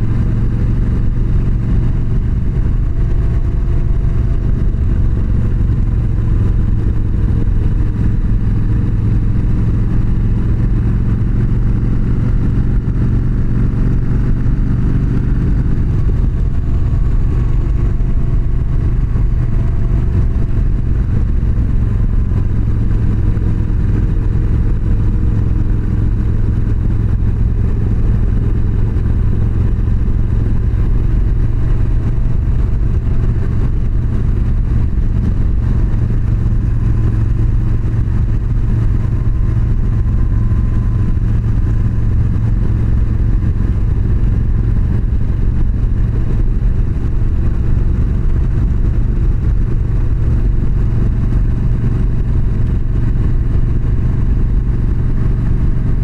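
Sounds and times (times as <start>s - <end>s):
motorcycle engine cruising: 0.0s - 56.0s.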